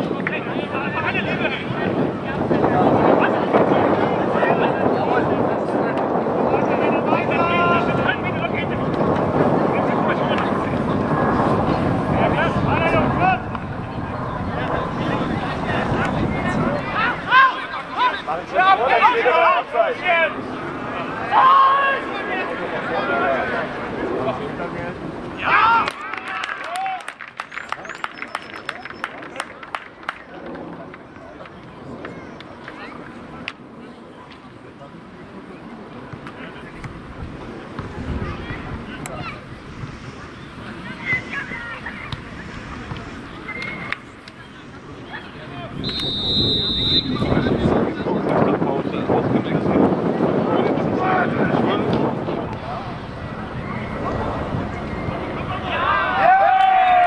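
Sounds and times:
wind rushing on microphone: 0:00.0 - 0:26.4, 0:27.2 - 0:57.0.

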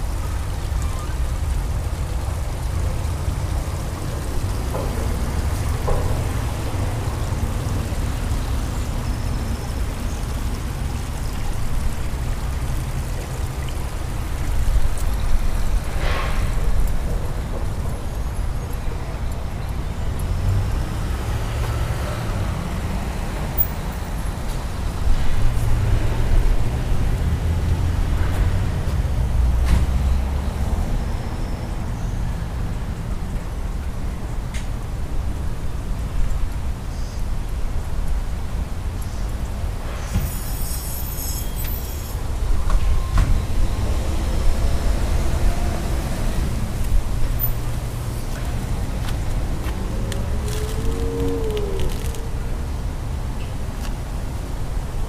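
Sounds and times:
low outdoor rumble: 0:43.5 - 0:55.0.

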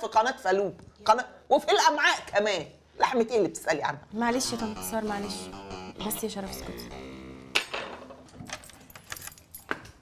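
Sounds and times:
keys jingling: 0:08.4 - 0:10.0.

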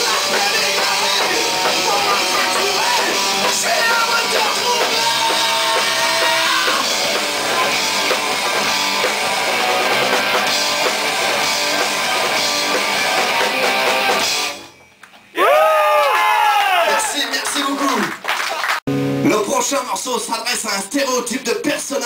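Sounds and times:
rock band playing loudly: 0:00.0 - 0:14.7.

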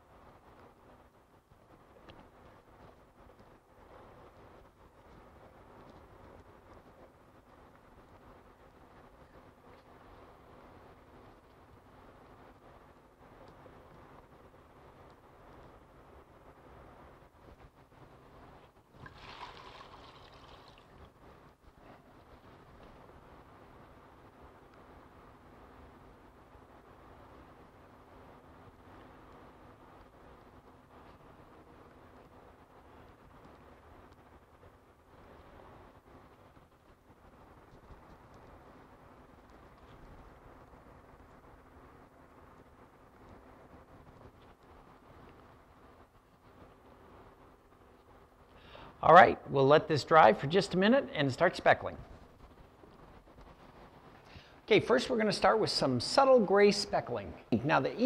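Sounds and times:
low steady hum: 0:00.0 - 0:58.0.

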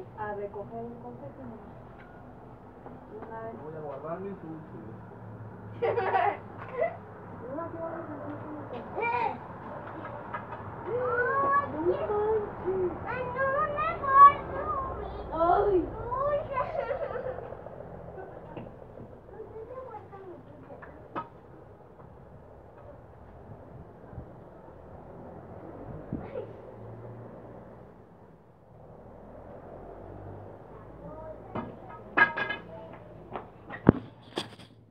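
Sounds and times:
children chattering: 0:05.8 - 0:24.0, 0:24.6 - 0:26.9, 0:29.6 - 0:33.7.

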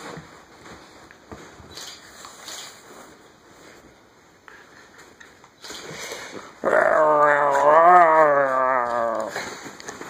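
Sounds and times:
faint rustling: 0:00.0 - 0:06.6
dog growling: 0:06.6 - 0:09.5.

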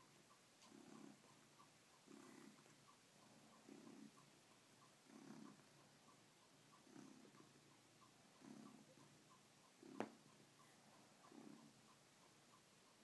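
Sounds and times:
cat purring: 0:00.0 - 0:13.0.

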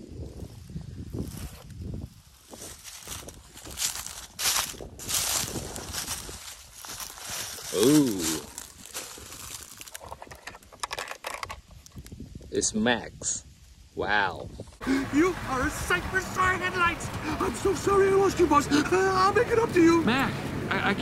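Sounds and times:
footsteps crunching dry leaves: 0:00.4 - 0:10.3
person's short exclamation: 0:07.7 - 0:08.6.

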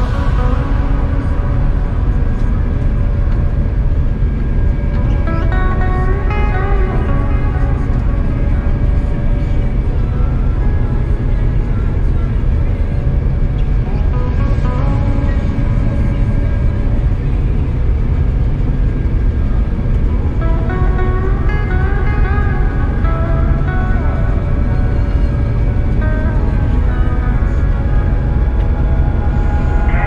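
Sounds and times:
combine harvester rumble: 0:00.0 - 0:30.0
music with moving melody: 0:00.0 - 0:30.0.

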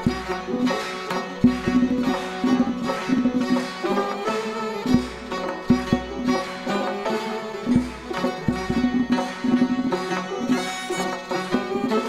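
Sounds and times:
bowed string instrument: 0:00.0 - 0:12.0
plucked strings: 0:00.0 - 0:12.0
sharp percussive stroke: 0:00.0 - 0:12.0.

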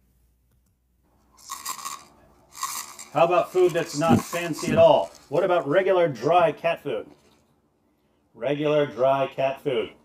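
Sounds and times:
dry cat food rattling in dish: 0:01.4 - 0:05.6.

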